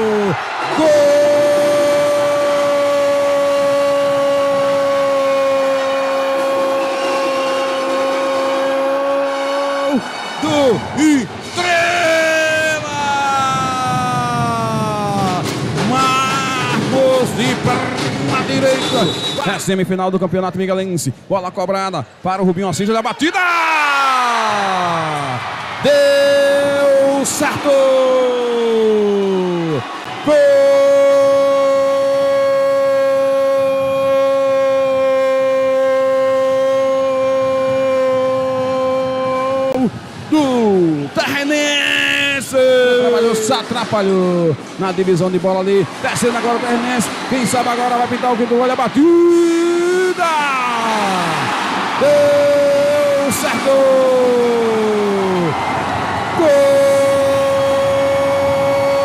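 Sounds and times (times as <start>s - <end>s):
commentator shouting goal: 46.1s - 55.5s, 56.4s - 59.0s
commentator shouting goal cry: 56.4s - 59.0s.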